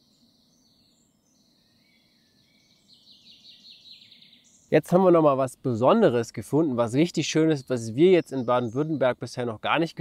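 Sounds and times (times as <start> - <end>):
songbird chirps: 0.0 - 10.0.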